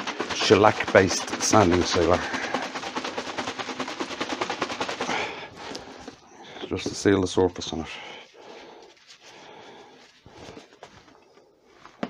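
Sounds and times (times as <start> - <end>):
container being shaken: 0.0 - 11.2.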